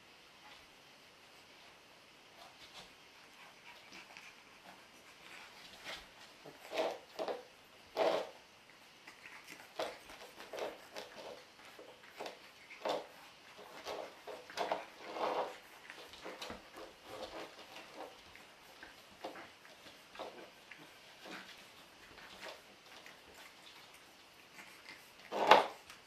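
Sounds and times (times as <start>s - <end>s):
puppies scrabbling on tile floor: 2.4s - 8.4s, 9.0s - 26.0s.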